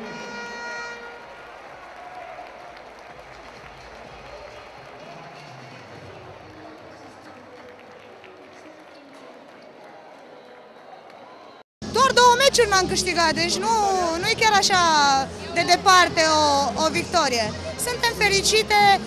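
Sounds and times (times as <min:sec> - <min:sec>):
hand-clapping: 0:01.3 - 0:10.2
crowd chatter: 0:03.2 - 0:11.6.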